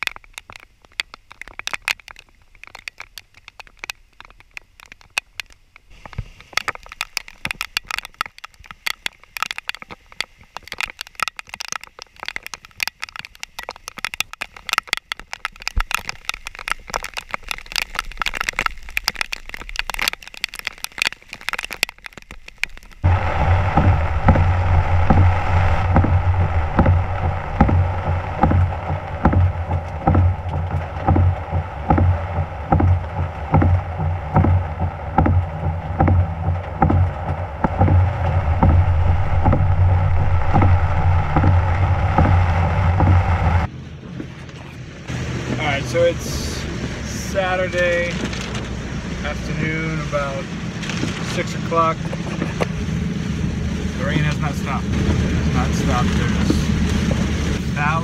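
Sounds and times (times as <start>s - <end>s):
heavy rain on microphone: 0.0s - 58.0s
steady hum with regular beat: 23.1s - 43.7s.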